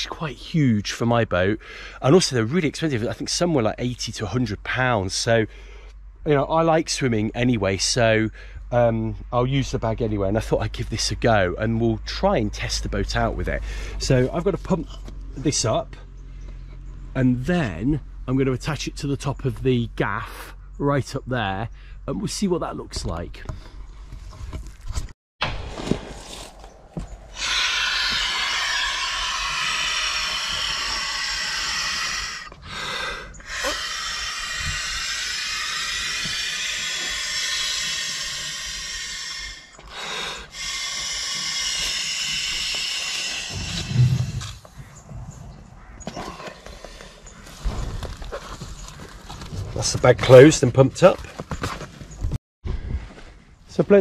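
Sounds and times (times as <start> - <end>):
person inhaling: 1.6 - 2.0, 5.5 - 5.9, 8.3 - 8.6, 13.6 - 14.0, 27.3 - 35.2, 35.9 - 44.5
man blowing into inflatable: 27.3 - 44.6.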